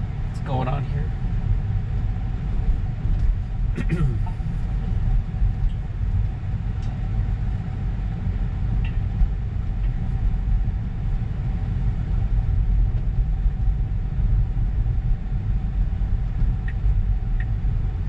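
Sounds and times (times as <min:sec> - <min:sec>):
faint steady hum: 0:00.0 - 0:18.0
tyre and road noise: 0:00.0 - 0:18.0.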